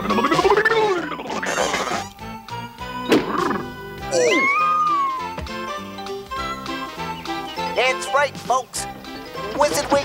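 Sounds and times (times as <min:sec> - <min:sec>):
cartoon background music: 0:00.0 - 0:10.0
high whining cry: 0:04.1 - 0:05.4.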